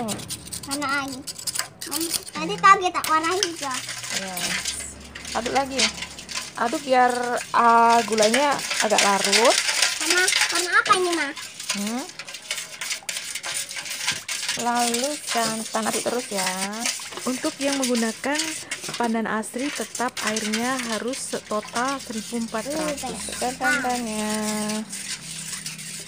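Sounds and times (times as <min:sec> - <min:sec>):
whisk scraping metal pot: 0:00.0 - 0:26.0
person speaking: 0:20.5 - 0:24.9.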